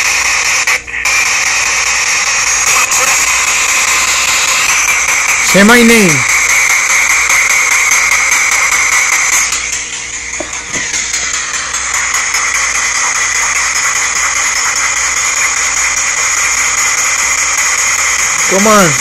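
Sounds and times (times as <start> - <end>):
radio static hiss: 0.0 - 19.0.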